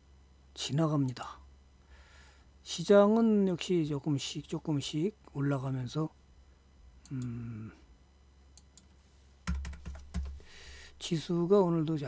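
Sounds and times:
computer keyboard typing: 8.6 - 10.5.

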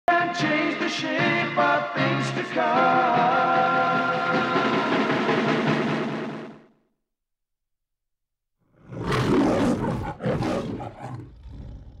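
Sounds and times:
lion roaring: 8.8 - 12.0.

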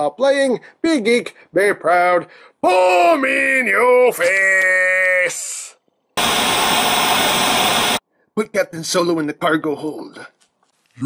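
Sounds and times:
white noise static hiss: 6.2 - 8.0.

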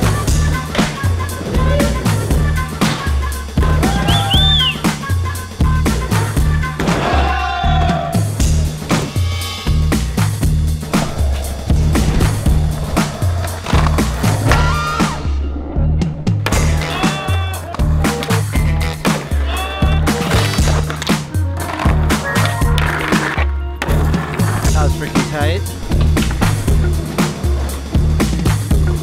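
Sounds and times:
background music with bass line: 0.0 - 29.0
skateboard wheels rolling on pavement: 10.0 - 17.0, 17.8 - 29.0.

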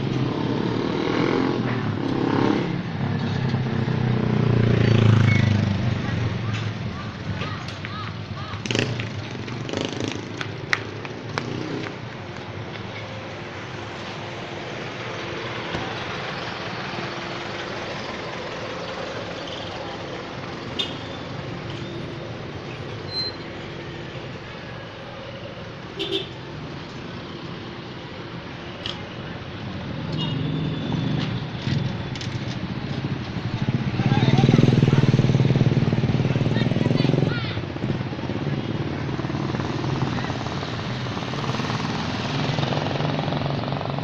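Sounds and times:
motorcycle engines running: 0.0 - 44.0
people's voices: 5.9 - 9.6, 33.6 - 37.8
small motorcycle engines running: 30.2 - 44.0.

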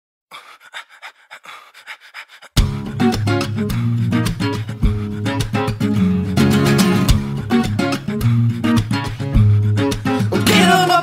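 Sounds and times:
rapid panting breaths: 0.3 - 6.9, 8.9 - 10.3.

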